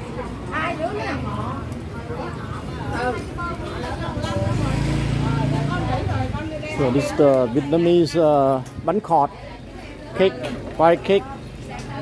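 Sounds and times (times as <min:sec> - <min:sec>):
small motorbike engine passing: 0:04.1 - 0:07.0.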